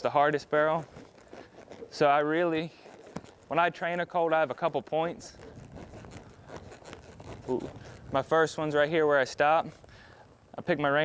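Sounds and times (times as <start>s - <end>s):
horse hoofbeats in dirt: 0.0s - 9.0s.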